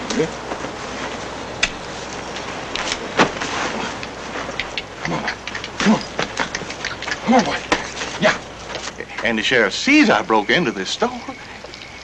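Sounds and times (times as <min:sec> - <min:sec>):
hooves and tack clicking: 0:01.6 - 0:09.4, 0:11.0 - 0:12.0.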